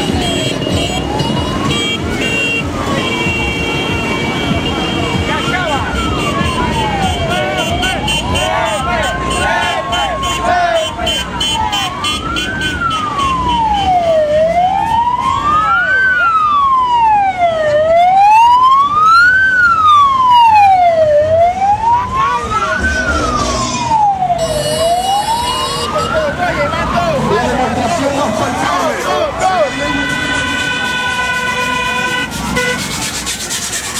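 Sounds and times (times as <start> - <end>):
siren wailing: 0.0 - 3.1, 4.0 - 33.9
crowd noise: 0.0 - 33.9
traffic noise: 0.0 - 33.9.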